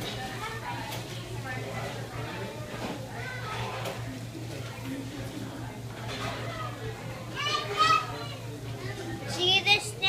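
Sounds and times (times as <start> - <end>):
boy talking: 6.4 - 10.0.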